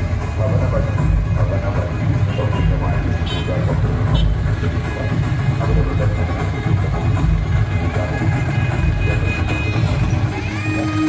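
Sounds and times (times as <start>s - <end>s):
music: 0.0s - 11.0s
people's voices: 0.0s - 11.0s.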